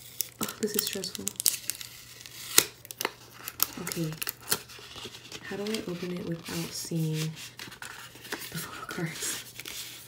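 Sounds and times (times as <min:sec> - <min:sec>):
paper envelope crackling: 0:00.0 - 0:10.0.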